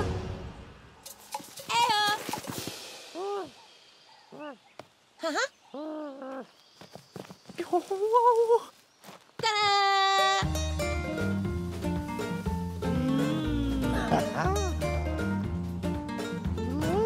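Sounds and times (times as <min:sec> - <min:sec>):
background score music: 0:00.0 - 0:01.8, 0:10.4 - 0:17.0.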